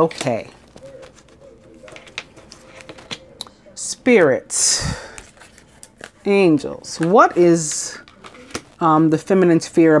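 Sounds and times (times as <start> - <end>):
hand handling cards: 0.0 - 4.2, 5.1 - 9.5.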